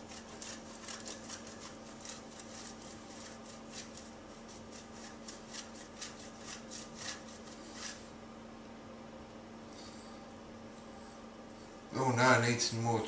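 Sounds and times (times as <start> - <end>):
cheese grating on metal grater: 0.0 - 8.1.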